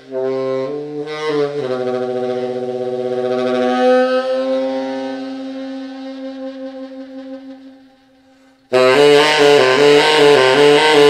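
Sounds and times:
tenor saxophone solo: 0:00.0 - 0:11.0.

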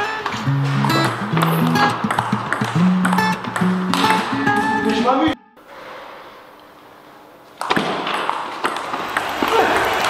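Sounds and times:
background music with bass line: 0:00.4 - 0:05.1.

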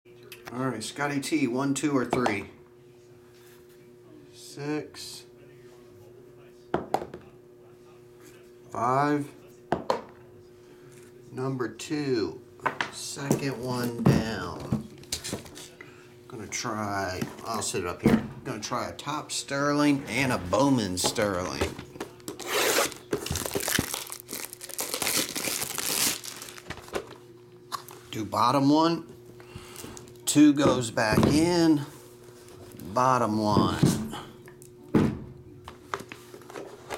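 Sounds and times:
plastic shrink wrap tearing: 0:22.3 - 0:27.0.

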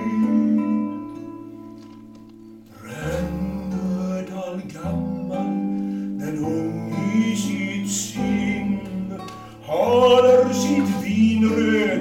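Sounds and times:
man singing: 0:00.0 - 0:01.4, 0:02.7 - 0:12.0
nylon-string guitar playing: 0:00.0 - 0:12.0.

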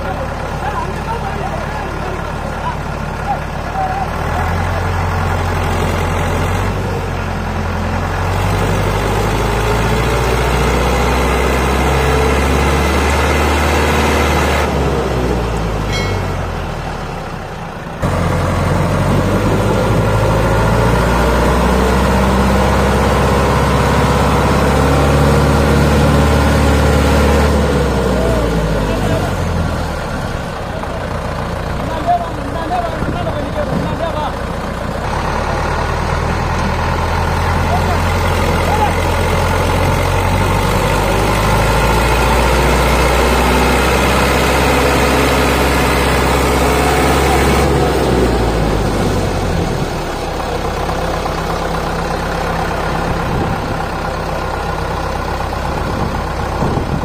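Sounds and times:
diesel engines revving under load: 0:00.0 - 0:57.0.

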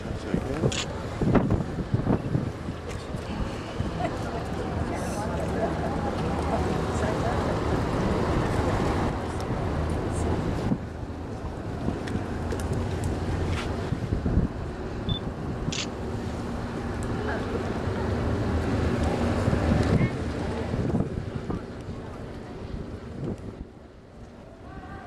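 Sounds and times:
wind buffeting microphone: 0:00.0 - 0:23.9.

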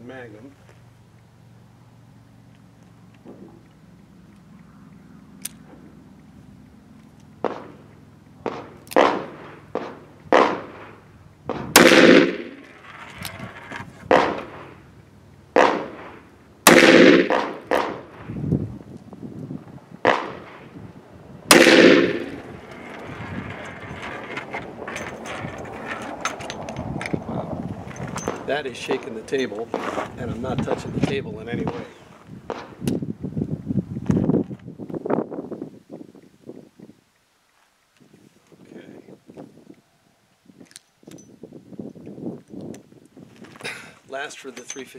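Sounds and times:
revolver shots: 0:07.4 - 0:07.8, 0:08.4 - 0:12.8, 0:14.1 - 0:14.8, 0:15.5 - 0:18.4, 0:20.0 - 0:20.7, 0:21.5 - 0:22.6.

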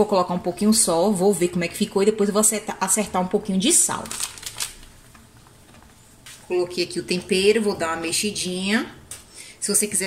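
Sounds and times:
plastic packet crinkling: 0:03.7 - 0:06.0.

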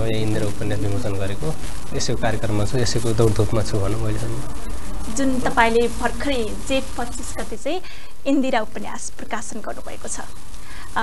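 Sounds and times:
steady low hum: 0:00.0 - 0:11.0
person talking: 0:05.1 - 0:08.6.

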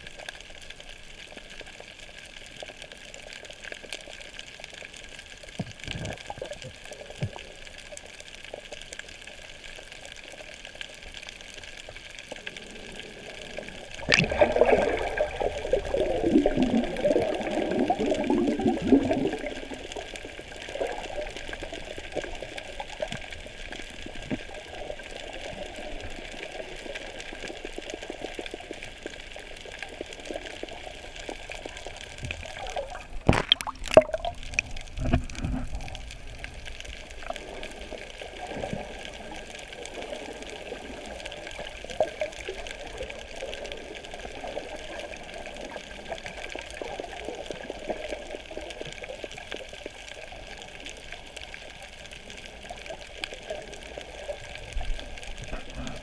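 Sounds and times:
rush of moving water: 0:05.2 - 0:56.0.

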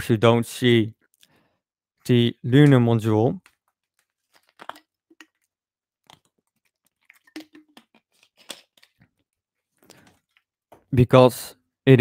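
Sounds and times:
small clicks and rustles: 0:03.4 - 0:10.6.

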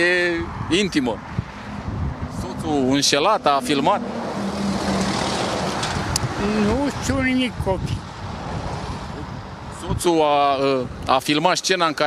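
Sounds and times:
vehicle passing by: 0:00.4 - 0:09.7.

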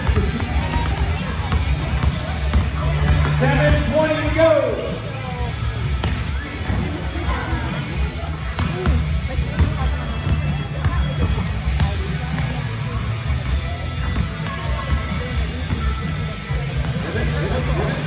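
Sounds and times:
sneakers squeaking: 0:00.0 - 0:12.6, 0:13.6 - 0:18.0.

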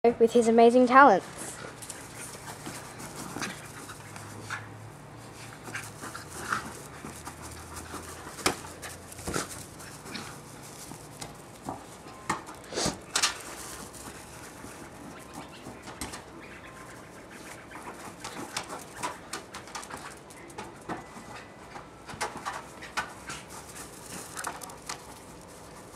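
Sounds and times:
small dog panting: 0:01.3 - 0:25.9.

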